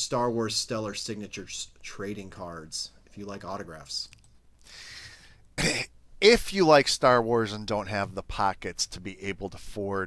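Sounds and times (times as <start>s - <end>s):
faint breath: 4.6s - 5.4s
man coughing: 5.6s - 6.0s.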